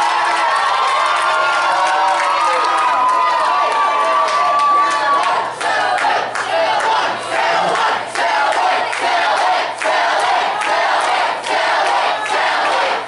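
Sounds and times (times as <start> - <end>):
crowd chanting rhythmically: 4.8 - 13.0.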